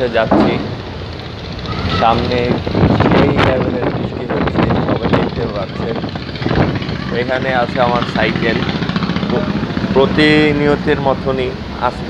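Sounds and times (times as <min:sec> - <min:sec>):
man talking: 0:00.0 - 0:00.8, 0:02.0 - 0:06.0, 0:07.1 - 0:08.6, 0:09.3 - 0:12.0
boat engine rumble: 0:00.0 - 0:12.0
wind noise: 0:01.6 - 0:09.4.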